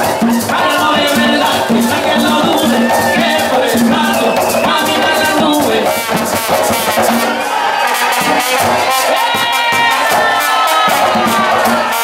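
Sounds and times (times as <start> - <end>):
brass horn melody: 0.0 - 12.0
crowd noise: 0.0 - 12.0
hand-played barrel drums: 0.0 - 12.0.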